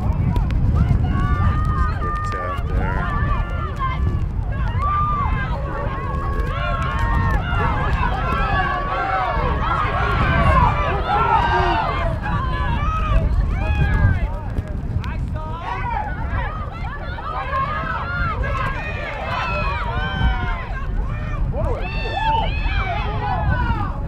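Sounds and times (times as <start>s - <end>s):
wind rumble on microphone: 0.0s - 24.0s.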